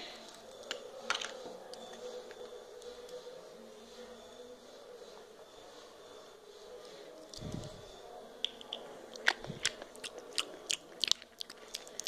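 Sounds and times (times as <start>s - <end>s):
plastic toys clicking and tapping: 0.6s - 1.9s.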